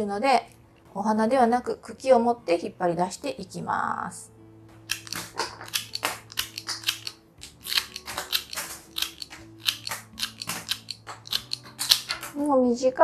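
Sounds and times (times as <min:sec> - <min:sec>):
shears snipping stems: 0:04.9 - 0:12.5.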